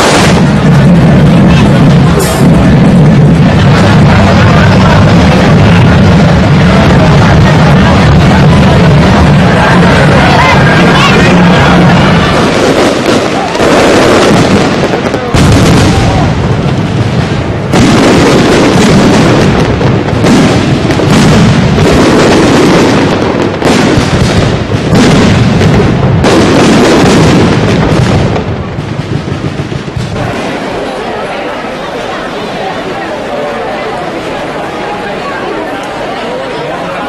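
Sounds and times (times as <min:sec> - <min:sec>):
fireworks bangs and crackle: 0:00.0 - 0:37.0.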